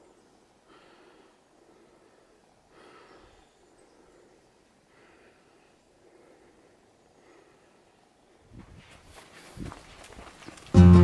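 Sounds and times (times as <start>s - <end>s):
footsteps on forest path: 8.5s - 11.0s
background music with held notes: 10.7s - 11.0s.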